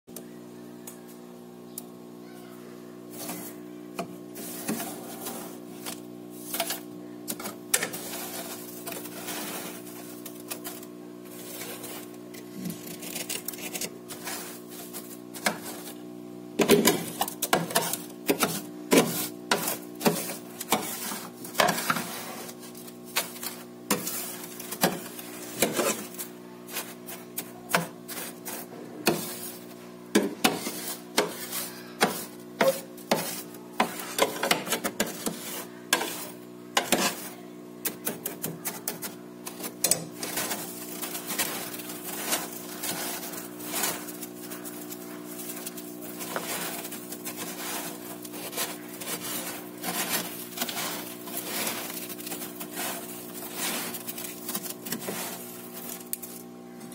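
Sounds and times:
hands scraping frost: 4.4s - 6.8s, 7.7s - 16.0s, 16.9s - 29.8s, 30.4s - 56.5s.

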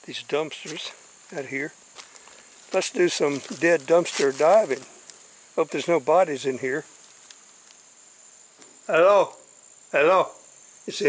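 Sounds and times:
insects trilling: 0.0s - 11.0s
faint ticks: 5.0s - 5.3s, 7.0s - 7.9s.

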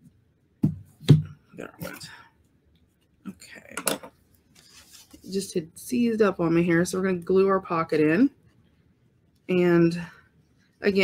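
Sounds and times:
paper rustling on wooden table: 4.5s - 5.3s.

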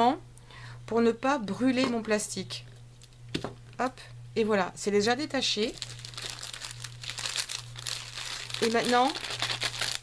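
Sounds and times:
low steady hum: 0.0s - 10.0s
plastic sleeve crinkling: 5.4s - 10.0s.

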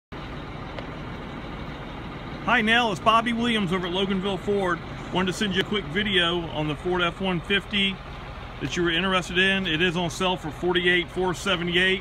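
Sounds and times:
road traffic hum: 0.1s - 12.0s.

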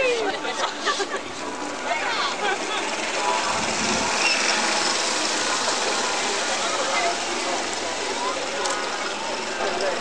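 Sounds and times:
outboard motor running: 0.4s - 10.0s.

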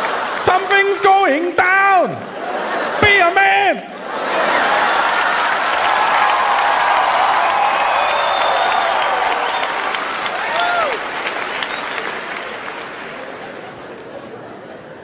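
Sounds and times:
audience applauding and cheering: 0.0s - 2.2s, 4.0s - 14.6s.

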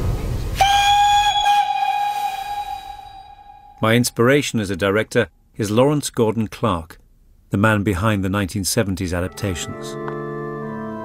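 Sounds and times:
steam locomotive whistle: 0.6s - 3.8s.

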